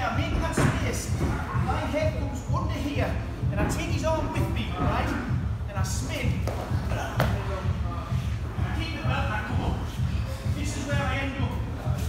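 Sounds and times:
background music: 0.0 - 12.0
people talking: 0.0 - 12.0.

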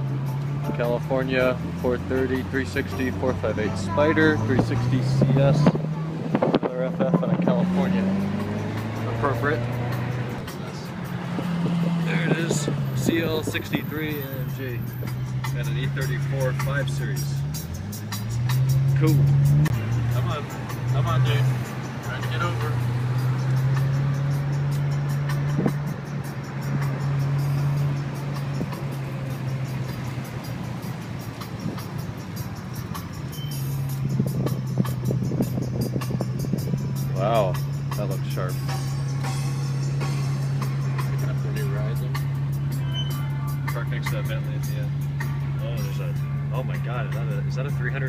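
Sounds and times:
car engine humming: 0.0 - 48.0
music playing: 0.0 - 48.0.

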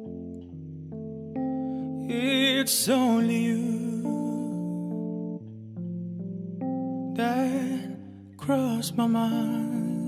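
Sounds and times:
electronic keyboard sustained chords: 0.0 - 10.0.

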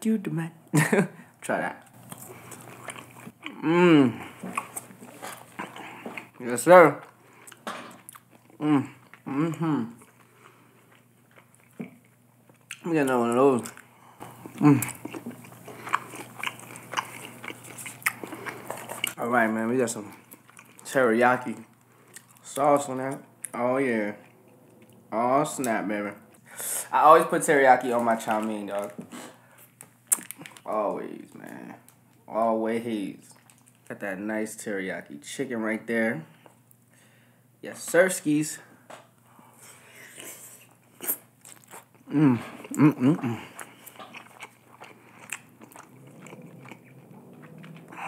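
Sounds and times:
chewing food: 1.9 - 3.6, 4.2 - 19.2, 19.9 - 25.1, 29.8 - 32.2, 33.3 - 33.9, 40.2 - 48.0.

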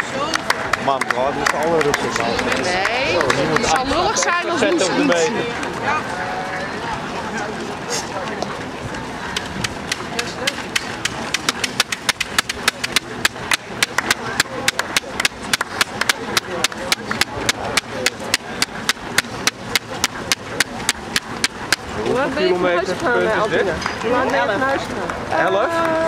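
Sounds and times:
murmur of voices: 0.0 - 26.0
sharp hand claps: 0.2 - 3.9, 9.4 - 21.9.

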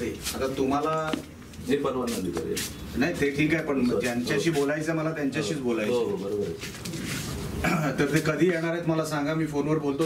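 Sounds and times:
man speaking: 0.0 - 6.7
crowded room background noise: 0.0 - 10.0.

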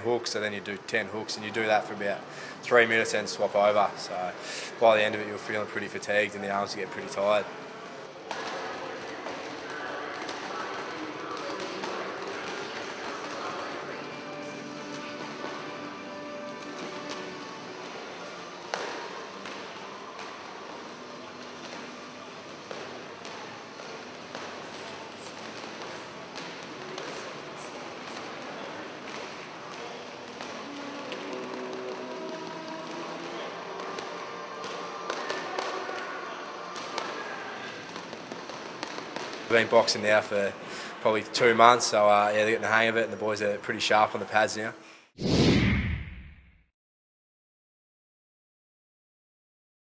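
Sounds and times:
background music: 0.0 - 44.8
boxing gloves slapping pads: 29.0 - 39.5.

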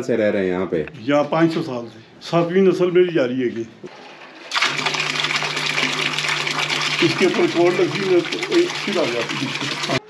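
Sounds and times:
fountain pump humming: 4.5 - 10.0
water jet splashing: 4.5 - 10.0.

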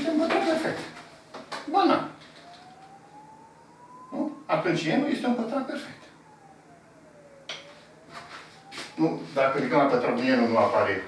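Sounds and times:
thin tone rising in pitch: 0.0 - 11.0
low hum: 2.2 - 10.0.

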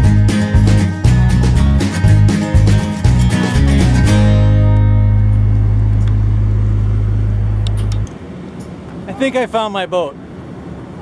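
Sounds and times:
background music low chord: 0.0 - 8.1
faint outdoor background noise: 4.5 - 11.0.

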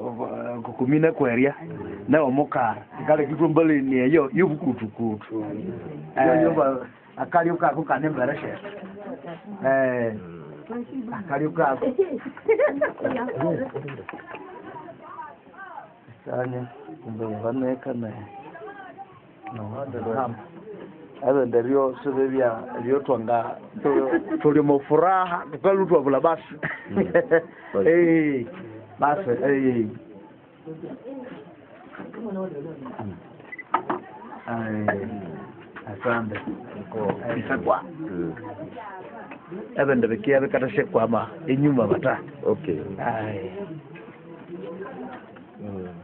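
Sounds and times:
people's voices: 0.0 - 46.0.

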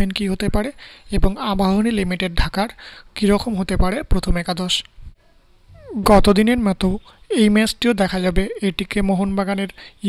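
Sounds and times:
falling vocal glide: 5.7 - 6.3
person speaking: 5.7 - 6.9.

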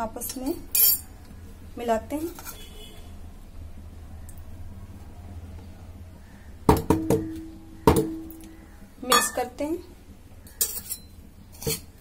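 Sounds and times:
steel bowl knocking on metal plate: 6.7 - 8.4, 9.1 - 9.5
metal ringing tone: 7.0 - 9.6.

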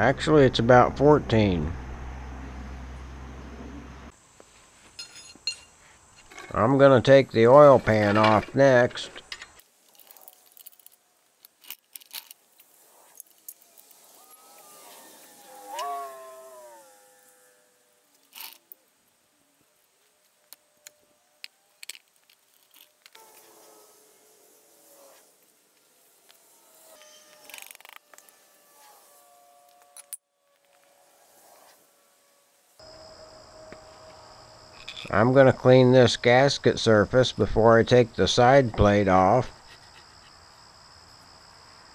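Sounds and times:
wrench and bolts clinking: 5.0 - 6.6, 9.2 - 12.5, 18.2 - 18.6, 34.8 - 35.2.

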